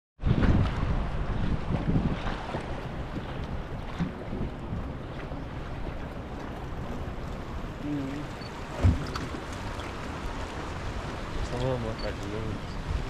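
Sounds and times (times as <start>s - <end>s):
water lapping against boat: 0.2s - 13.0s
wind buffeting microphone: 0.2s - 13.0s.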